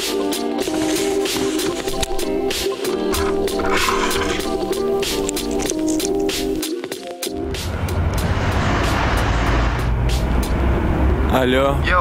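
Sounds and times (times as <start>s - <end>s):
low rumble of vehicles: 7.4s - 12.0s.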